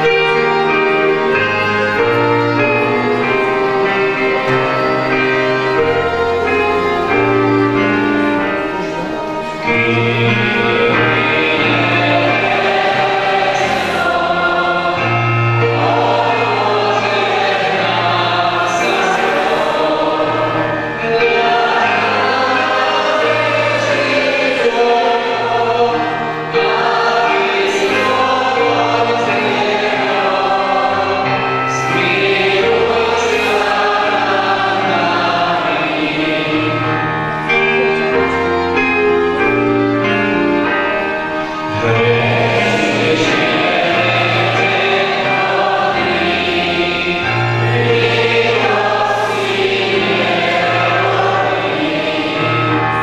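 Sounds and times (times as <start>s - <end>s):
violins: 0.0s - 53.0s
voices singing a hymn: 0.0s - 53.0s
man leading singing: 8.7s - 14.9s, 41.6s - 52.0s.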